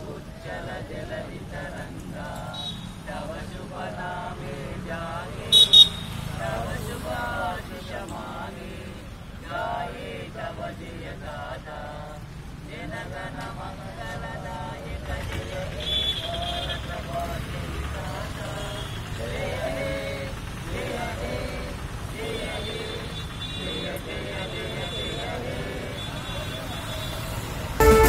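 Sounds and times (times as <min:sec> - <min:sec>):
men chanting: 0:00.0 - 0:28.0
men singing held notes: 0:00.0 - 0:28.0
high-pitched horn toots: 0:05.5 - 0:06.2, 0:26.6 - 0:28.0.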